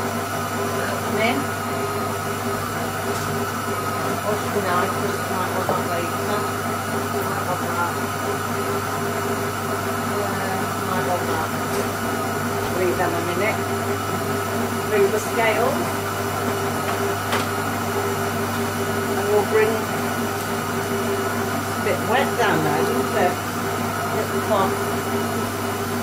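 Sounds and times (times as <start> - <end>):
food processor running: 0.0 - 26.0.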